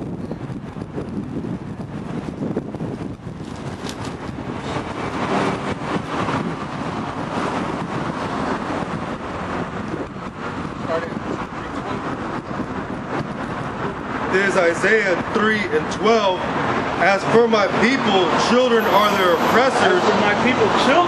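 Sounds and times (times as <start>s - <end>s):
road traffic going by: 0.0s - 21.0s
wind buffeting microphone: 0.0s - 21.0s.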